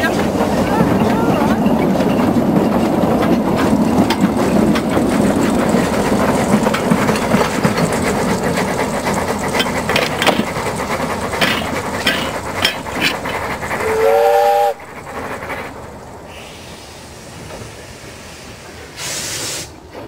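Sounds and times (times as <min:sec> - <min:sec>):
train wheels clicking over rail joints: 0:00.0 - 0:20.0
steam whistle blast: 0:13.8 - 0:14.8.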